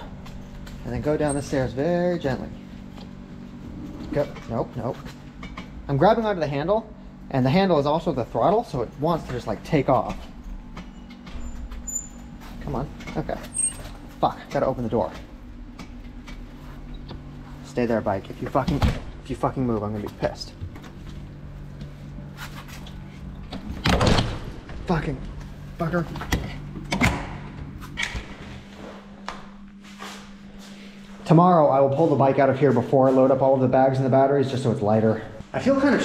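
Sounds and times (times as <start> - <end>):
low steady hum: 0.0 - 36.0
low rumble: 3.2 - 4.8.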